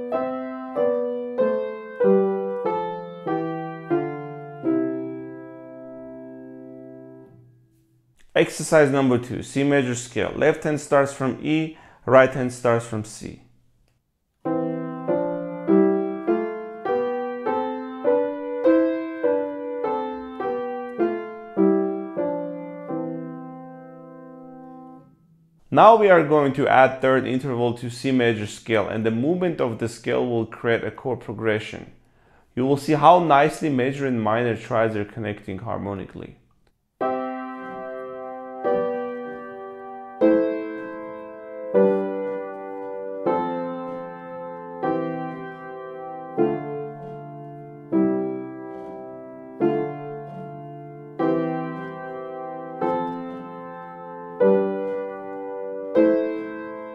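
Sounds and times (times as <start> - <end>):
upright piano playing a scale: 0.0 - 7.8, 14.4 - 30.2, 37.0 - 56.9.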